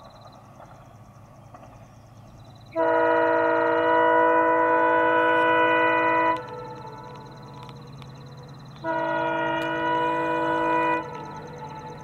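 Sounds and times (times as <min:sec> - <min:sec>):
locomotive air horn blast: 0:02.8 - 0:07.2, 0:08.8 - 0:12.0.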